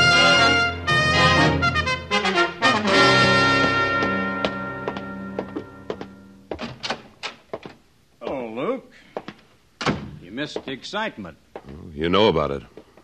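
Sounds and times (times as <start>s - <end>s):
brass music chord: 0.0s - 6.4s
person speaking a word: 11.6s - 12.2s.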